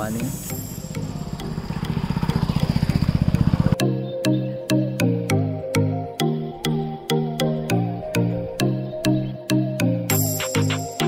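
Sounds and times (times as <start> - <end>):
background music with steady beat: 0.0 - 2.3, 3.8 - 11.0.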